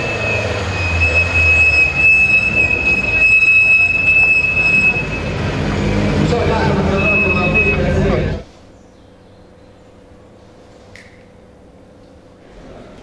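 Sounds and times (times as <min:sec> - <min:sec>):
car engine running low: 0:00.0 - 0:08.4
high-pitched whine: 0:00.0 - 0:08.4.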